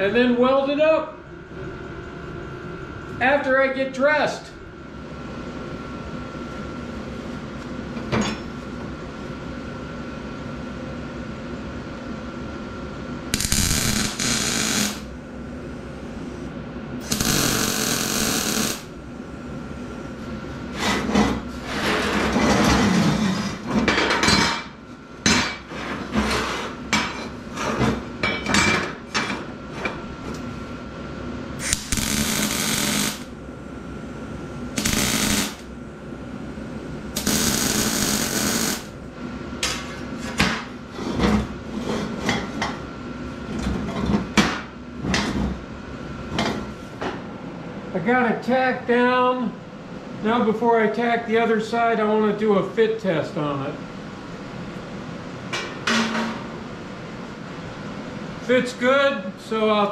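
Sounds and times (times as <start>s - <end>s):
steady hum: 0.0s - 59.9s
arc welder crackling: 13.3s - 15.3s, 17.0s - 19.1s, 31.6s - 33.4s, 34.7s - 35.8s, 37.1s - 39.0s.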